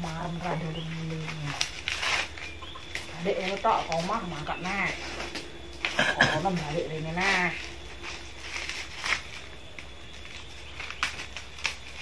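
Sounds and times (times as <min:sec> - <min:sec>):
dry corn husks rustling: 0:00.0 - 0:12.0.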